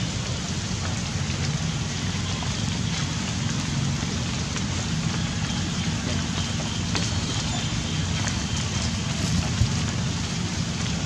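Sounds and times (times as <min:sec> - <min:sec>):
rain falling: 0:00.0 - 0:11.0.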